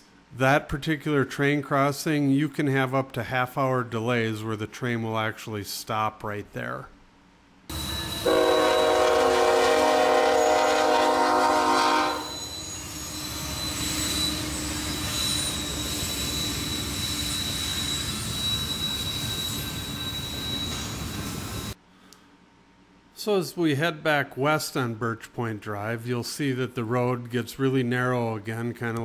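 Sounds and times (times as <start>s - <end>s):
high-pitched squeal: 7.7s - 21.8s
train cars rumbling: 7.7s - 21.8s
train air horn blast: 8.2s - 12.3s.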